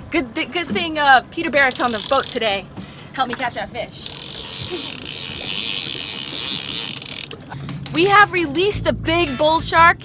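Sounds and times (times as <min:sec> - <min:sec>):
fishing reel clicker buzzing: 0:01.6 - 0:02.5, 0:03.9 - 0:07.4.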